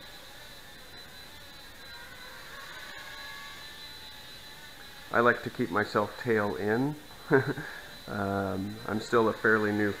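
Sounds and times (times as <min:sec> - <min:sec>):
quadcopter propellers whirring: 0:00.0 - 0:10.0.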